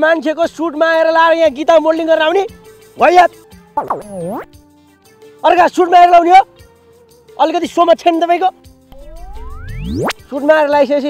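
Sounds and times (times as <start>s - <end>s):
cartoon rising tone effect: 3.8s - 4.6s, 8.9s - 10.3s.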